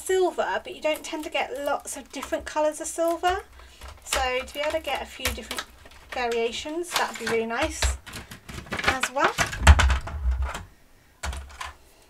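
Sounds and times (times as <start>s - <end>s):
craft supplies clattering: 0.8s - 11.7s.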